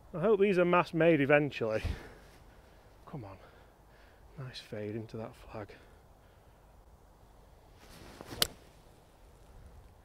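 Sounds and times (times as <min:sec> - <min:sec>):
golf club swishing: 0:07.7 - 0:09.2
club striking golf ball: 0:08.2 - 0:08.6.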